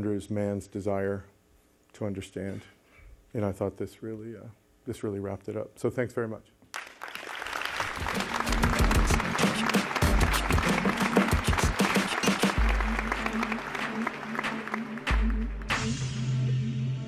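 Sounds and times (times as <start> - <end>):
audience applauding: 6.7 - 15.8
music with deep bass: 8.1 - 17.0.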